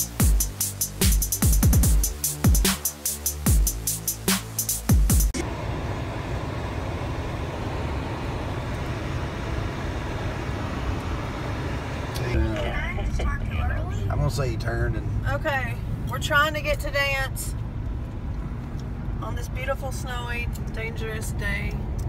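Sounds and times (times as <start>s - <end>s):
car road and engine rumble: 3.4s - 22.0s
people talking: 12.2s - 17.5s, 19.2s - 21.8s.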